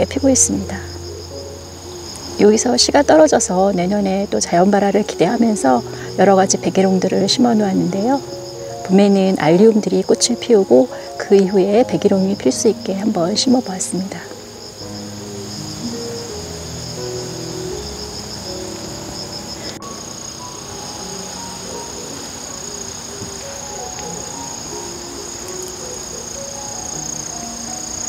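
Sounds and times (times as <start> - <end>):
insects chirring: 0.0 - 28.0
soft instrumental music: 0.0 - 28.0.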